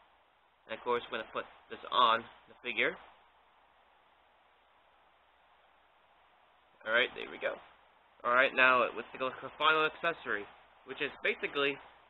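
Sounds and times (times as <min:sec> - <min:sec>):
man speaking: 0:00.7 - 0:03.1, 0:06.8 - 0:11.9.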